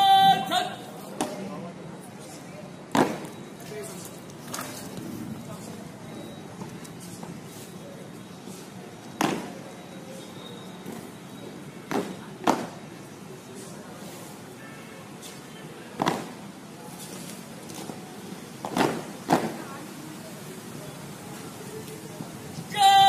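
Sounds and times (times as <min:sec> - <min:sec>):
person shouting command: 0:00.0 - 0:00.9, 0:22.7 - 0:23.0
outdoor background noise: 0:00.0 - 0:23.0.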